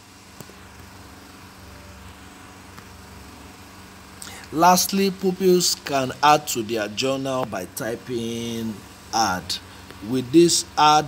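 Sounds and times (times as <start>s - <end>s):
faint hum and hiss: 0.0s - 11.0s.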